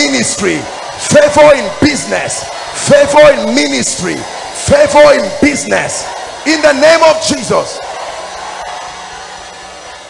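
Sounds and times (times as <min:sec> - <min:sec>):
meeting hall rushing noise: 0:00.0 - 0:10.0.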